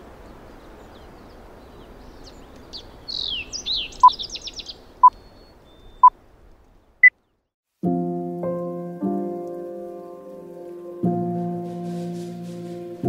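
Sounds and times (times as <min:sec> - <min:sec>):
birds chirping: 0:00.0 - 0:07.5
outdoor ambience: 0:00.0 - 0:07.5, 0:09.5 - 0:13.0
lofi piano music: 0:07.8 - 0:13.0.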